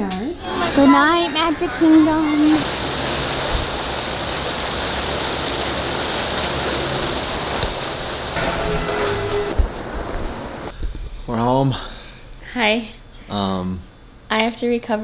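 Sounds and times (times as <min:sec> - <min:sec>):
water and wind rushing: 0:00.4 - 0:10.8.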